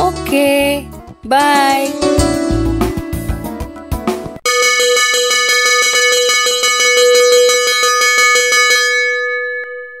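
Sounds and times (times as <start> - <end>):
school bell ringing rapidly: 4.4 - 10.0.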